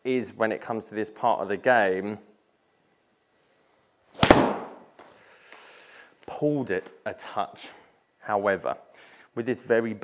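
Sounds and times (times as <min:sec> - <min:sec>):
golf club striking ball: 0:04.2 - 0:04.8.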